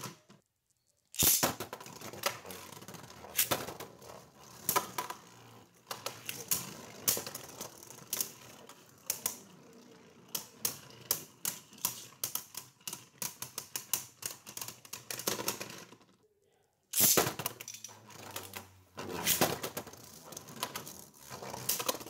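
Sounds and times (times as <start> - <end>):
spinning tops clashing clicks: 1.2 - 1.8, 16.9 - 18.6.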